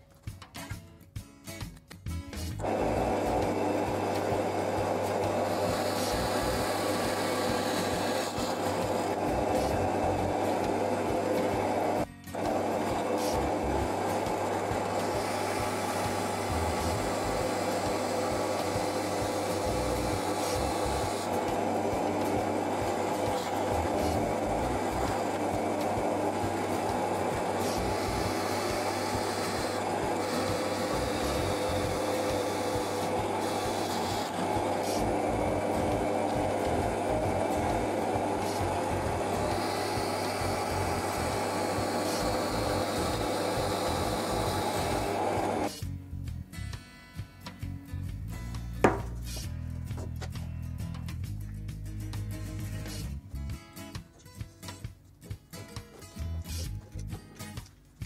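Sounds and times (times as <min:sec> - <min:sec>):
drill press boring into wood: 0:02.6 - 0:45.8.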